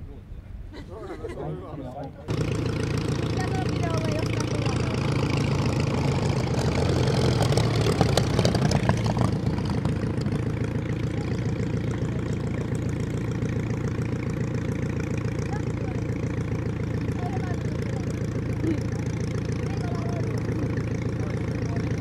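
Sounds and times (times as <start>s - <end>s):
airplane engine drone: 2.2s - 22.0s.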